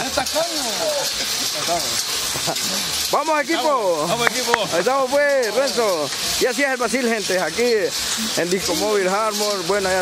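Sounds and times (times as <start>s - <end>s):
high-pitched hiss: 0.0s - 10.0s.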